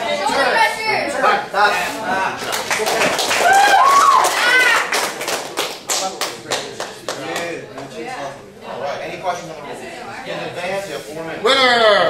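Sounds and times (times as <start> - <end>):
people clapping: 2.3 - 8.0.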